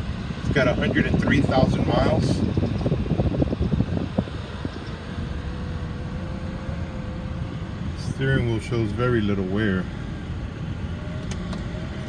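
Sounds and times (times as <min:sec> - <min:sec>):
air conditioning blower: 0:00.0 - 0:12.0
car engine idling: 0:00.0 - 0:12.0.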